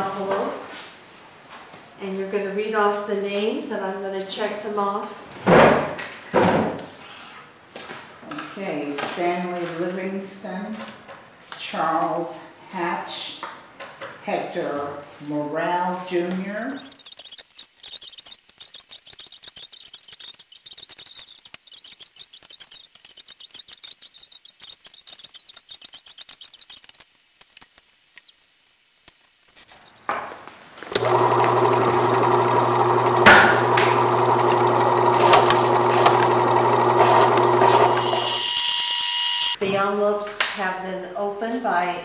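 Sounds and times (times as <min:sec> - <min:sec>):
envelope opening machine humming: 0:30.9 - 0:39.6.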